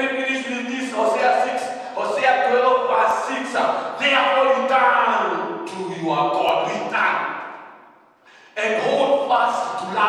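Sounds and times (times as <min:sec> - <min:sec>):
man preaching into microphone: 0:00.0 - 0:07.6, 0:08.4 - 0:10.0.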